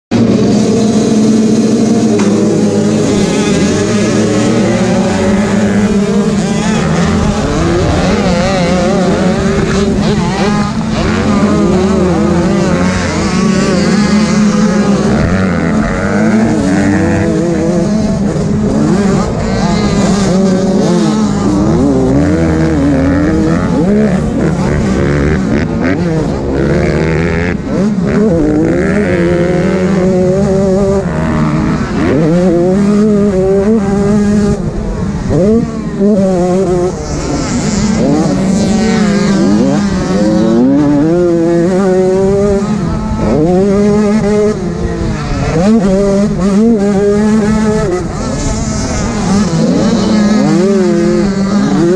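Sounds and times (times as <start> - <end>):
motocross bike engines racing: 0.1 - 51.9.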